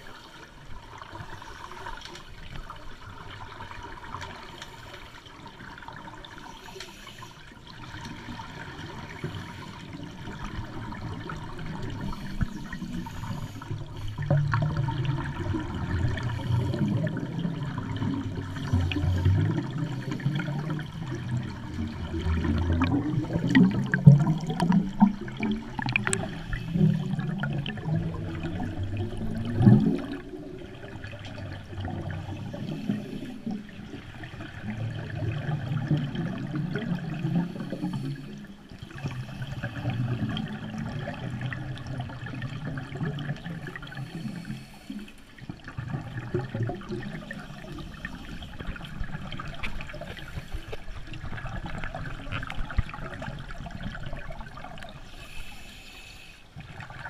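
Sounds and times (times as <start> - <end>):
underwater bubbles gurgling: 0.0 - 57.0.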